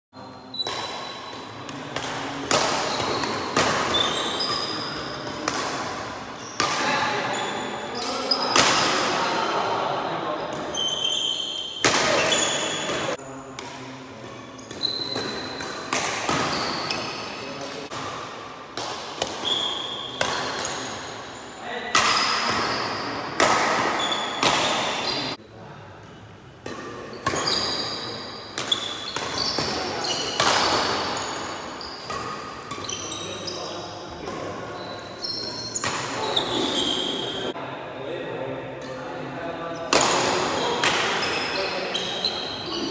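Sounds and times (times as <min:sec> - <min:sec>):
rackets hitting shuttlecock: 0:00.5 - 0:07.2, 0:08.0 - 0:09.4, 0:10.5 - 0:21.2, 0:21.9 - 0:25.4, 0:26.6 - 0:33.1, 0:35.8 - 0:36.8, 0:39.9 - 0:42.2
shoes squeaking on wooden floor: 0:03.9 - 0:05.2, 0:14.5 - 0:15.3, 0:16.4 - 0:17.3, 0:27.2 - 0:28.2, 0:28.8 - 0:32.1.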